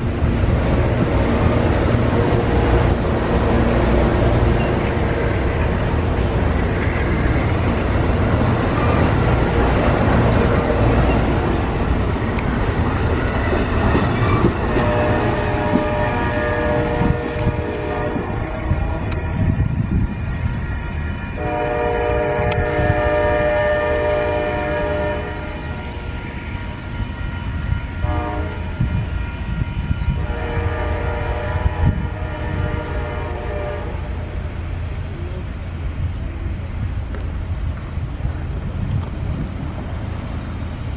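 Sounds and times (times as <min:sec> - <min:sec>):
train wheels rumbling and clattering: 0:00.0 - 0:40.9
distant train horn: 0:14.2 - 0:34.5.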